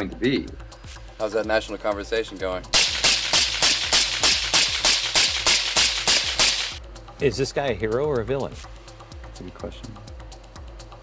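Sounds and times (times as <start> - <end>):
rapid sharp cracks: 2.8 - 6.8.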